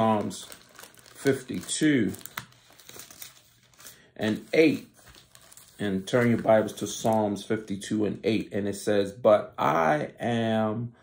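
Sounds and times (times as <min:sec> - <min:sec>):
paper pages rustling: 0:00.0 - 0:07.4.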